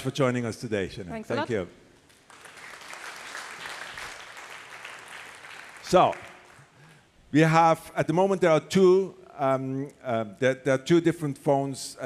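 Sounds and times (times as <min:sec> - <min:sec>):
audience applauding: 0:02.1 - 0:06.9.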